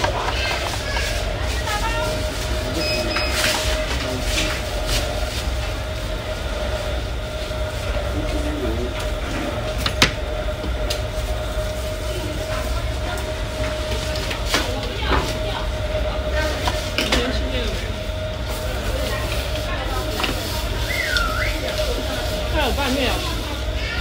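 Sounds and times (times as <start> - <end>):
low room rumble: 0.0 - 24.0
machinery hum: 0.0 - 24.0.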